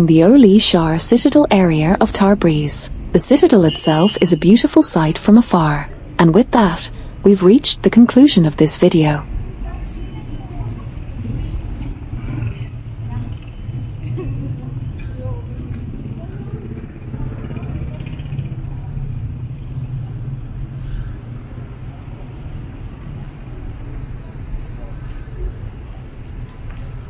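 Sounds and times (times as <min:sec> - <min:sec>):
people talking: 0:00.0 - 0:11.5
road traffic rumble: 0:00.0 - 0:27.0.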